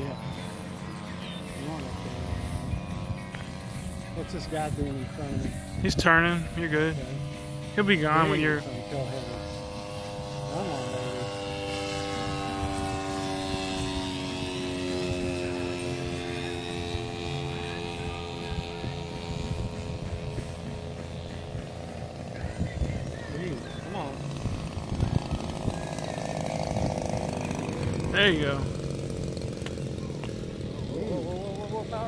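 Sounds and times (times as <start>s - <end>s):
model airplane engine buzzing: 0.0s - 32.0s.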